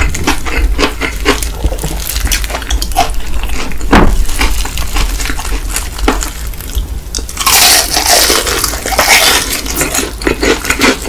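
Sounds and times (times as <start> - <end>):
chewing crunches: 0.0 - 11.0
loud crunch of crispy food: 0.0 - 11.0.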